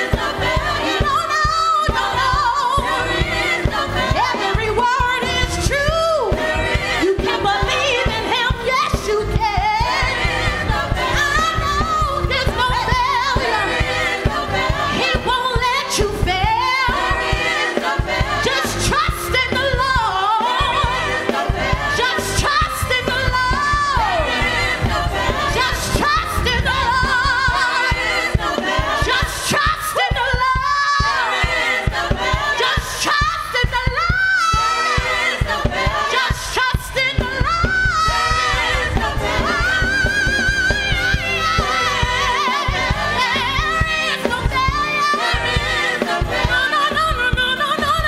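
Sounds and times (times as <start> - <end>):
gospel choir singing: 0.0 - 48.0
instrumental accompaniment with beat: 0.0 - 48.0
woman leading singing: 0.0 - 48.0.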